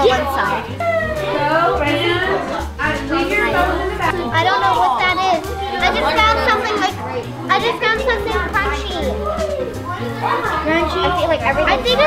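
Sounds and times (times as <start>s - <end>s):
background music: 0.0s - 12.0s
children chattering: 0.0s - 12.0s.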